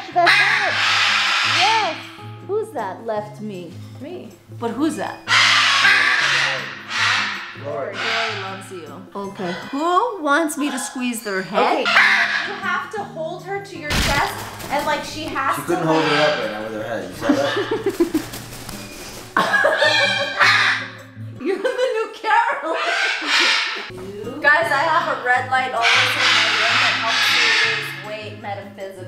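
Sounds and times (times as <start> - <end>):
macaw squawking: 0.0 - 2.2, 4.7 - 13.1, 13.9 - 21.1, 22.6 - 24.0, 24.7 - 28.5
background music: 0.0 - 29.0.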